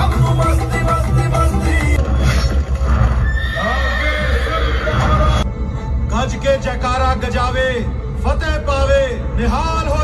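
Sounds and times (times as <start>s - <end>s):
horse whinnying: 3.2s - 5.4s.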